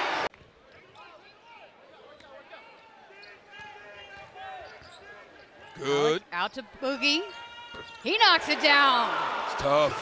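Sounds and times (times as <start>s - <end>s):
crowd cheering: 0.0s - 0.3s, 7.3s - 10.0s
sneakers squeaking on hardwood: 3.2s - 5.5s, 7.6s - 8.2s.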